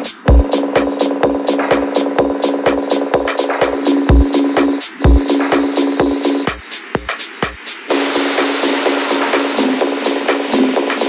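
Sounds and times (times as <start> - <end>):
quick rhythmic ticks: 0.0 - 7.7
techno dance music: 0.0 - 11.0
steady high tone: 0.4 - 6.5, 7.9 - 11.0
bright wash of noise: 7.9 - 10.2.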